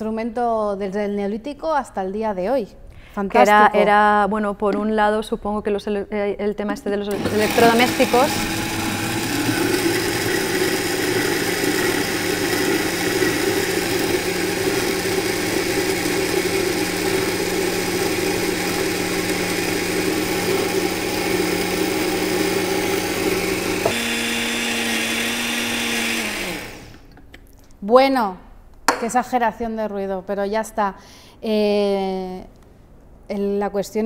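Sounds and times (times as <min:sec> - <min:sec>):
blender running: 0:07.1 - 0:27.1.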